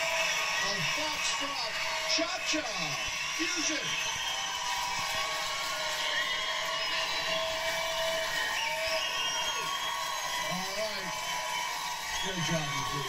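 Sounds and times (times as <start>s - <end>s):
audience clapping: 0.0s - 13.0s
audience whooping: 0.0s - 13.0s.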